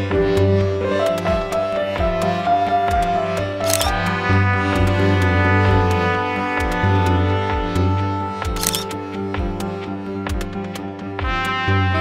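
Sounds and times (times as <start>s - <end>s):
music with held chords: 0.0s - 12.0s
deep drum beats: 0.1s - 8.6s, 9.2s - 11.8s
camera shutter sound effect: 3.6s - 4.0s, 8.6s - 9.0s.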